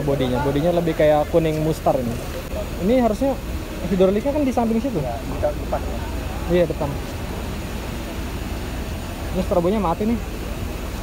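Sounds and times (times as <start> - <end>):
diesel bus engine idling: 0.0 - 11.0.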